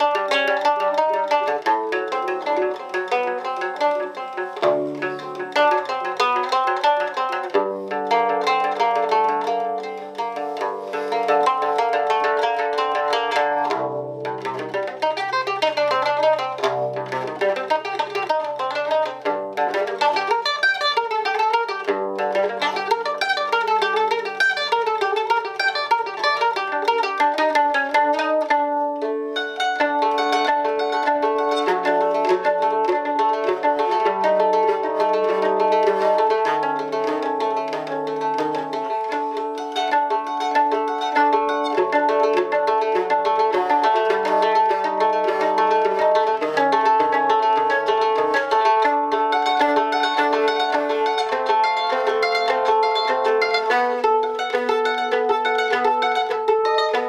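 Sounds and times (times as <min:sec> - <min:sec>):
plucked string arpeggios: 0:00.0 - 0:57.0.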